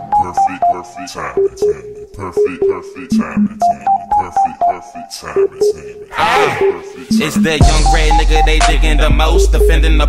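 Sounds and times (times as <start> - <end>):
hip hop beat: 0.0 - 10.0.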